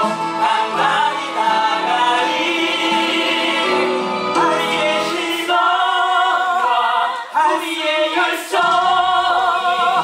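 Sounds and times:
instrumental accompaniment: 0:00.0 - 0:10.0.

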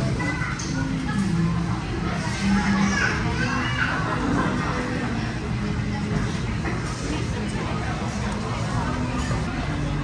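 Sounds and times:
children's voices: 0:00.0 - 0:05.2
indistinct chatter of diners: 0:00.0 - 0:10.0.

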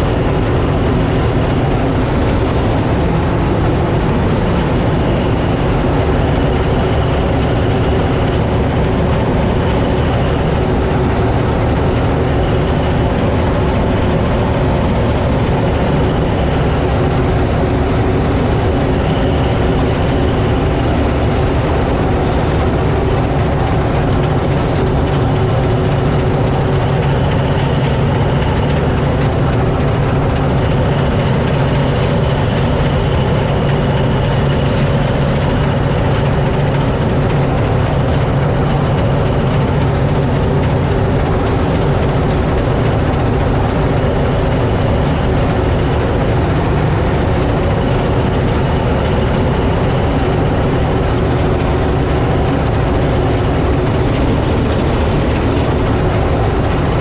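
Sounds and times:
combine harvester engine: 0:00.0 - 0:57.0.

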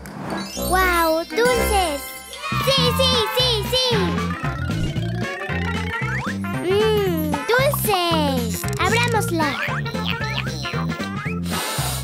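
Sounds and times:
bouncy children's music: 0:00.4 - 0:11.6.

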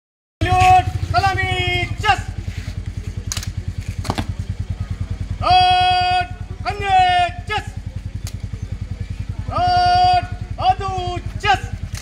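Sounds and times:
motorcycle engine idling: 0:00.4 - 0:12.0.

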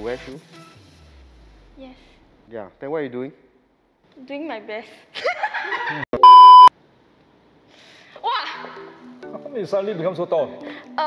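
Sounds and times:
people laughing: 0:05.2 - 0:06.1
electronic bleep tone: 0:06.2 - 0:06.7.

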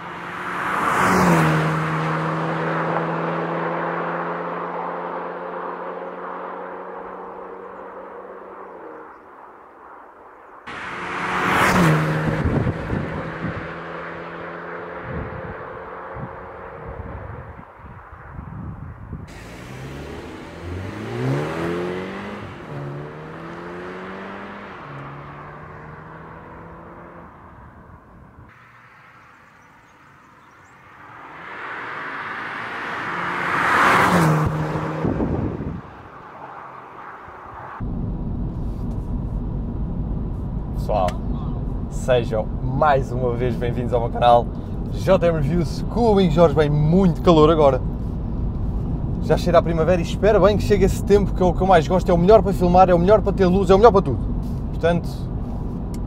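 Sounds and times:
engine revving: 0:00.0 - 0:09.2, 0:10.7 - 0:17.1, 0:19.3 - 0:27.6, 0:30.6 - 0:37.9
car engine driving past: 0:00.0 - 0:09.5, 0:10.7 - 0:17.2, 0:19.3 - 0:45.4.

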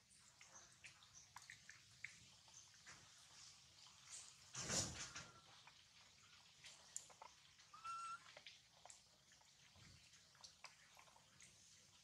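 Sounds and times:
whistle-like animal call: 0:07.8 - 0:08.2.

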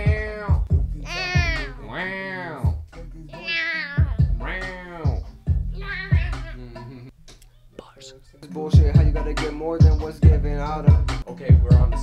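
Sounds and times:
hip-hop beat with kick drum: 0:00.0 - 0:07.1, 0:08.5 - 0:12.0
high-pitched vocal calls: 0:01.0 - 0:02.6, 0:03.3 - 0:07.1.

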